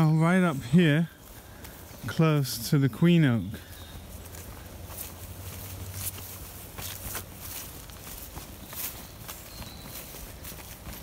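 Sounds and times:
footsteps on dry grass and leaves: 0.0 - 11.0.

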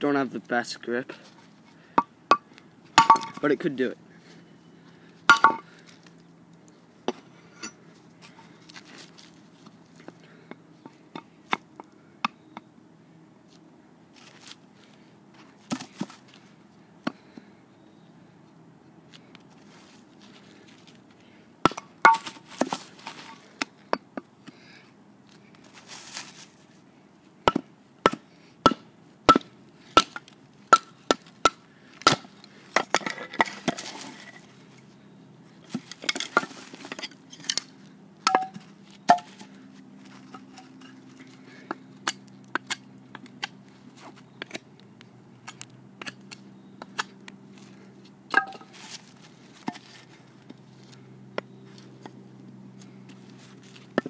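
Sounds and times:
knife striking hard wood: 48.3 - 48.7.

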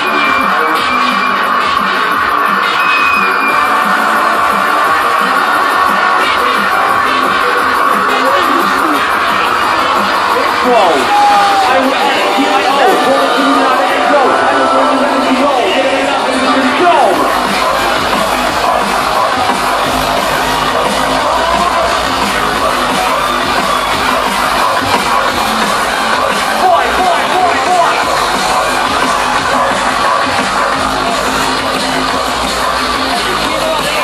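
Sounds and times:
crowd noise: 0.0 - 34.0
drum and bass music: 0.0 - 34.0.

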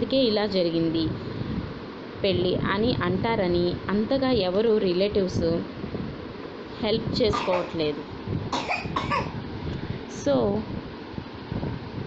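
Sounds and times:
woman coughing: 7.3 - 7.8, 8.6 - 9.4.

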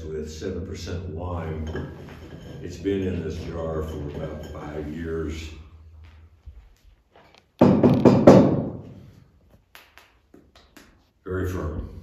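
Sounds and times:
hard knocks: 7.6 - 9.0.

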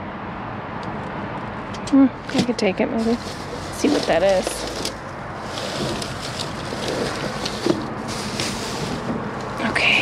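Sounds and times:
plastic bags and paper rustling: 2.3 - 10.0.

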